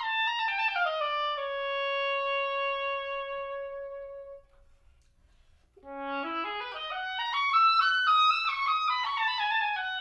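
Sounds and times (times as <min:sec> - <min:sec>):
oboe holding long note: 0:00.0 - 0:04.7, 0:05.8 - 0:10.0.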